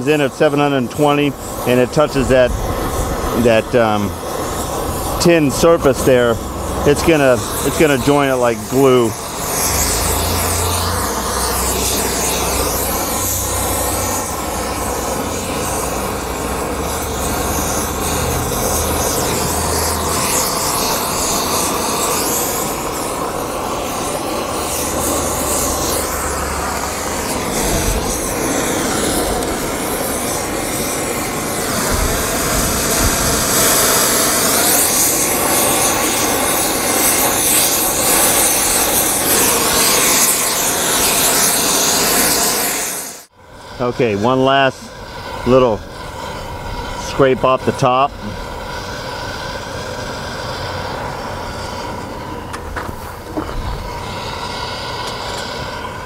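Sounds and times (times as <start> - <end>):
gas torch flame hissing: 0.0 - 56.0.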